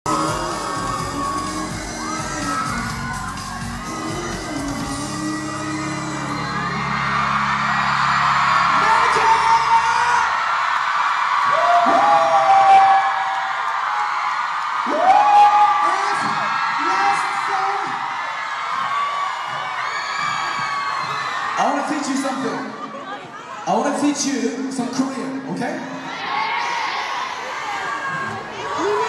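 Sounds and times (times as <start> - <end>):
amplified pop singing: 0.0 - 8.0
backing music: 0.0 - 10.7
audience screaming and cheering: 0.1 - 29.0.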